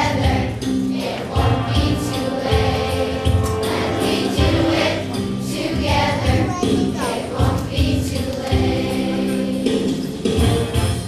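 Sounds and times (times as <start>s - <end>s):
children's choir singing: 0.0s - 10.4s.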